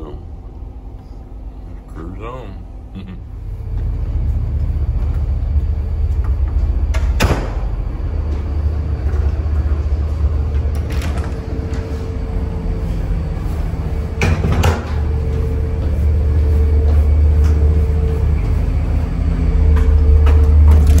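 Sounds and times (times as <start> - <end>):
boat engines rumbling: 0.0 - 21.0.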